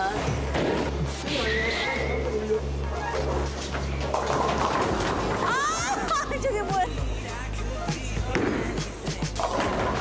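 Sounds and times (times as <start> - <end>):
background music: 0.0 - 10.0
bowling ball rolling: 2.0 - 5.6.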